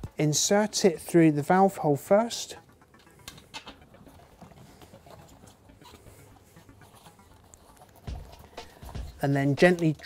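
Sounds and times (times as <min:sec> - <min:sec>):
rubber tube rustling and tapping: 0:02.9 - 0:10.0.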